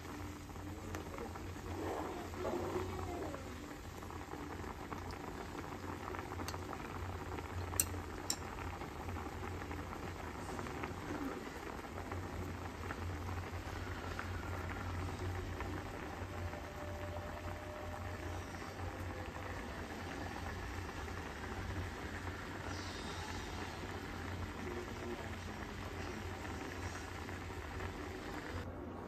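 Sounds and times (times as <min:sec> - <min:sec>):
sauce bubbling in a pan: 0:00.0 - 0:28.7.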